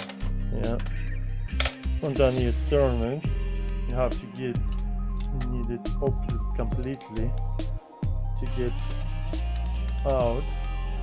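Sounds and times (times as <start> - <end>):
background music low tones: 0.0 - 11.0
latch and lid clicks: 1.5 - 1.9.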